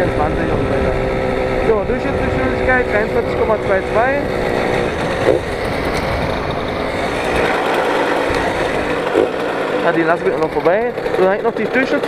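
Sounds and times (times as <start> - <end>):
moped engine running: 0.0 - 12.0
wind and road noise: 0.0 - 12.0.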